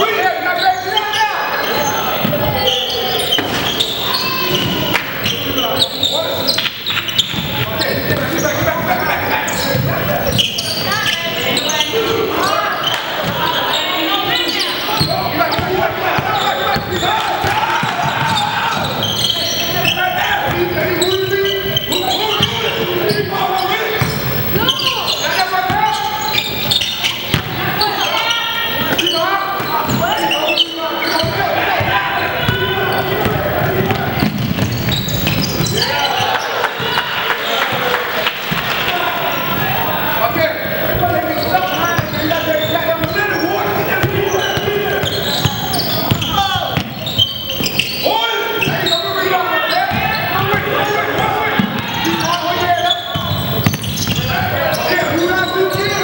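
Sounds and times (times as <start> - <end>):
indistinct voices calling out: 0.0 - 56.0
basketball bouncing on hardwood: 33.2 - 35.8, 45.5 - 47.0.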